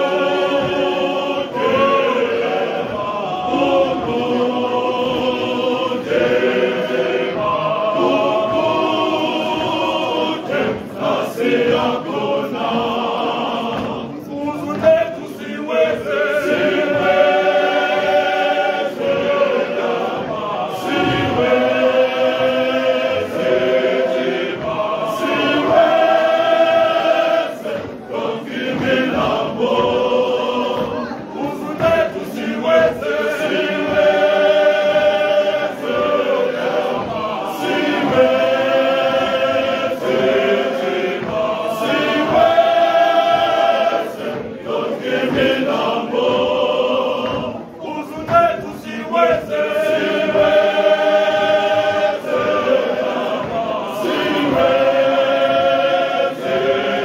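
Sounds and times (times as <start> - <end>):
male choir singing a hymn: 0.0 - 57.0.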